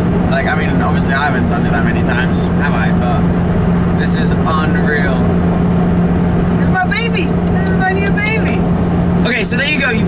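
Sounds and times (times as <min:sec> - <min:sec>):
car engine drone inside cabin: 0:00.0 - 0:10.0.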